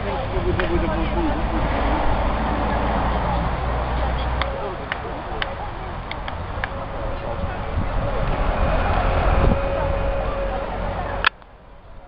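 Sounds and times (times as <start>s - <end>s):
faint voices: 0.0s - 12.0s
minibus engine idling: 0.0s - 12.0s.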